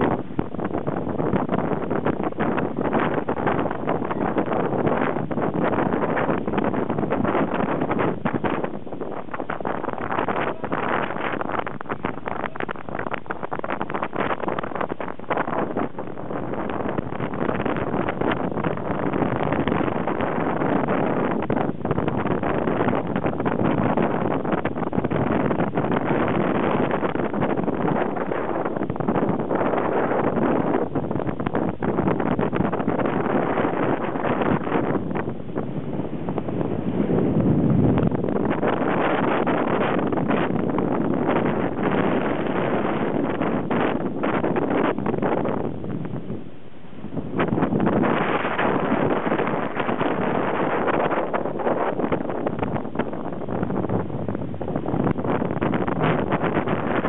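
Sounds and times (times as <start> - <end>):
strong wind on microphone: 0.0 - 57.0.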